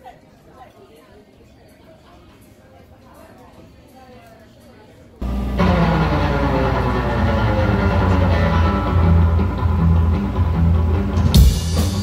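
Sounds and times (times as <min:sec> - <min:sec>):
live rock band playing: 0:05.2 - 0:12.0.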